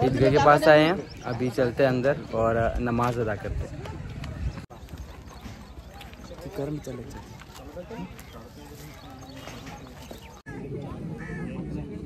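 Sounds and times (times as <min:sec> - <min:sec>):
faint distant voices: 0:00.0 - 0:12.0
footsteps crunching through dry grass: 0:04.7 - 0:10.5.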